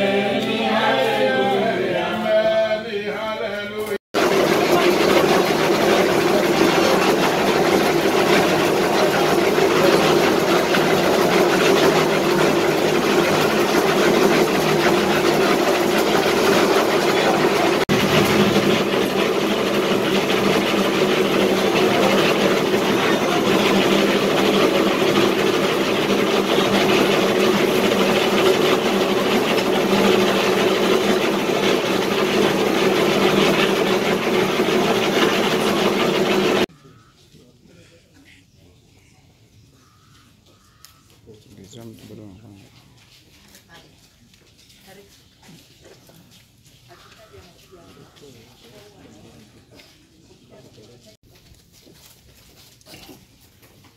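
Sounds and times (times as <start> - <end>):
concrete mixer engine running: 4.1 - 36.8.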